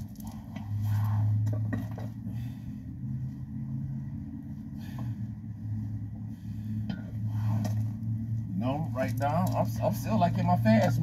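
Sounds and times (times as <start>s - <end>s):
low hum and rumble: 0.0s - 11.0s.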